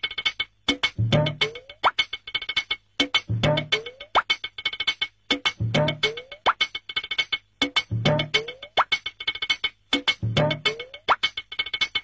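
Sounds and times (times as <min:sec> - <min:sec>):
light comic background music: 0:00.0 - 0:12.0.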